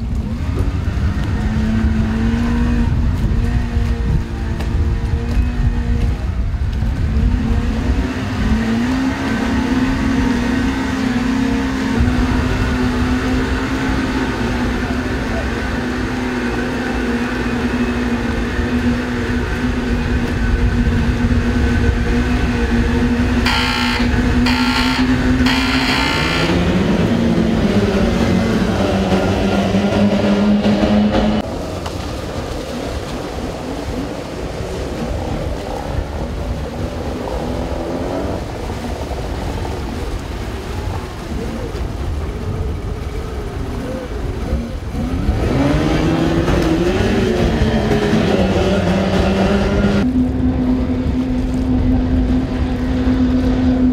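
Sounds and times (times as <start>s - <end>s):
outboard motors humming: 0.0s - 53.9s.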